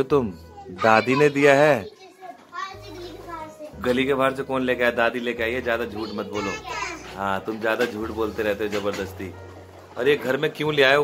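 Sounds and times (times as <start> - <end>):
adult speech: 3.8 - 9.4.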